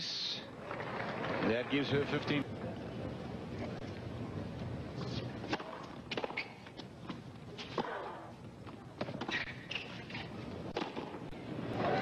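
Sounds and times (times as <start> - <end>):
racket striking tennis ball: 5.0 - 8.2
shoe squeaks on court: 6.2 - 6.8, 9.3 - 10.4.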